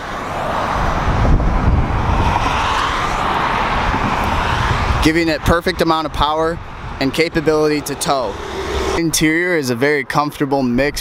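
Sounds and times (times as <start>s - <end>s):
passing vehicle tyres and engine: 0.0s - 11.0s.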